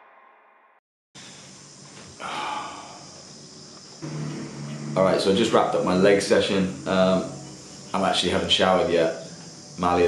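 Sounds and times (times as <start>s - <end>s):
high-pitched insect buzz: 1.2s - 10.0s
low steady hum: 1.3s - 10.0s.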